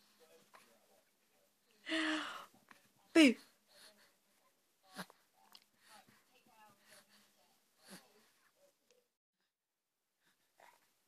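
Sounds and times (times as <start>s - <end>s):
baby breathing sound: 1.9s - 2.6s.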